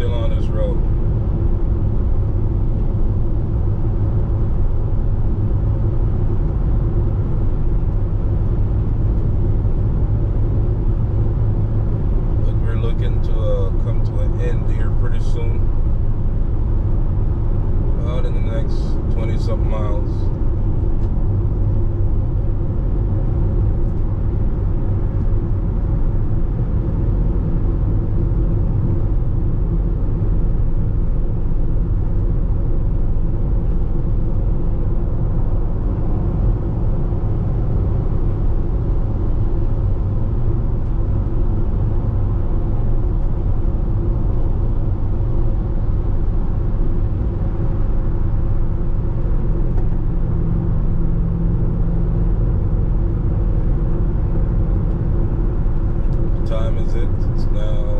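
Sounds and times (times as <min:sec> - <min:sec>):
car road rumble: 0:00.0 - 0:57.9
person's voice: 0:18.0 - 0:20.2, 0:56.4 - 0:57.9.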